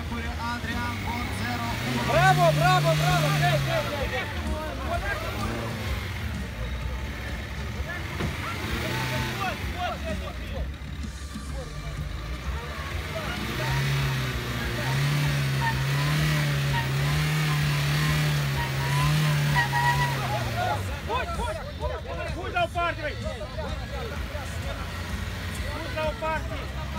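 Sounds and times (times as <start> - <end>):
car engine revving: 0.0 - 26.9
crowd chatter: 0.0 - 26.9.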